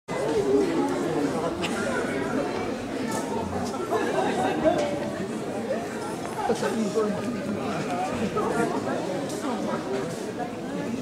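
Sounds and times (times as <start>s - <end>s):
indistinct chatter in a hall: 0.1s - 11.0s.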